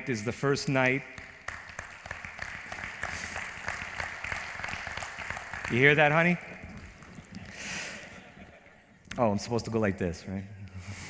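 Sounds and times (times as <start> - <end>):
audience applauding: 1.2 - 8.2.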